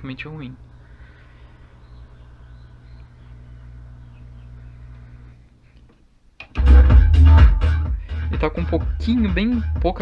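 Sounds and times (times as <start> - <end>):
faint speaker hum: 0.0 - 8.7
bass-heavy music from speakers: 6.4 - 10.0.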